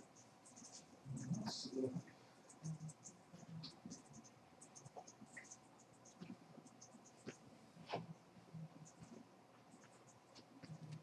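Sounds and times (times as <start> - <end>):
small clicks and rustles: 8.9 - 11.0.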